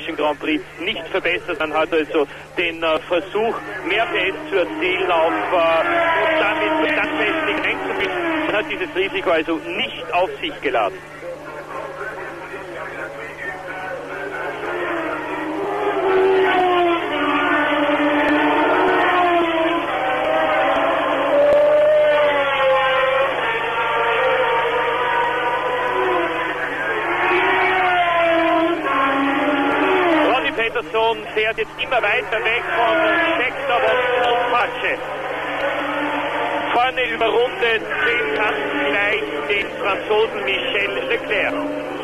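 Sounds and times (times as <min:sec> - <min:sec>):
racing cars passing at speed: 0:01.8 - 0:42.0.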